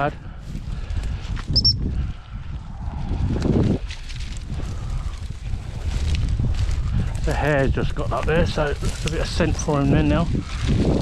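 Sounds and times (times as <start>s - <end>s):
footsteps through dry grass: 0.0s - 11.0s
wind rumbling on microphone: 0.0s - 11.0s.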